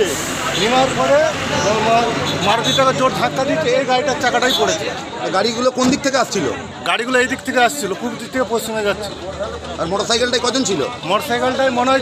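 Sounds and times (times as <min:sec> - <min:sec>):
street traffic noise: 0:00.0 - 0:12.0.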